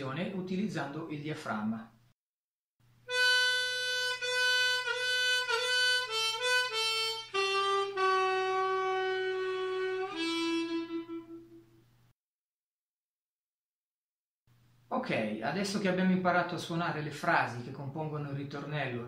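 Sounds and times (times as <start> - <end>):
harmonica solo with bent notes: 3.1 - 11.8.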